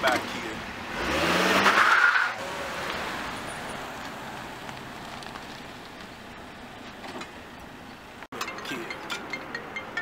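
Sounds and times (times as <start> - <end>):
car engine accelerating: 0.7 - 5.8.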